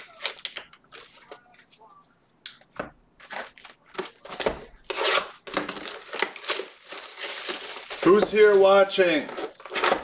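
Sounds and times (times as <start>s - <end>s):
plastic wrapping crinkling and tearing: 0.0s - 1.7s, 3.2s - 10.0s.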